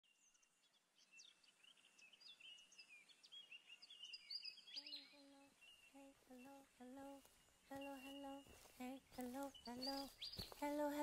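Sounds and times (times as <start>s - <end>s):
birdsong-like chirps and whistles: 0.0s - 11.0s
person humming a melody: 4.8s - 11.0s.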